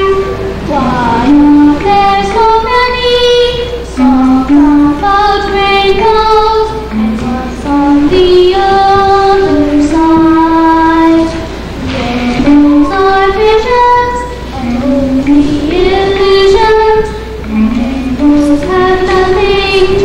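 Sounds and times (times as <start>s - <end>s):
girl singing held notes: 0.0s - 20.0s.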